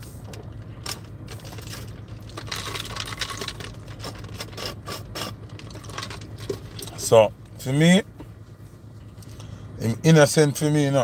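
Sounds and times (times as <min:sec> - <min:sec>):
low hum inside a car: 0:00.0 - 0:11.0.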